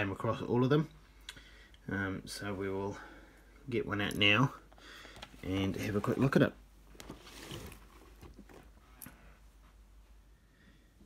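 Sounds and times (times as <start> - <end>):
cardboard rustle: 5.6 - 8.9.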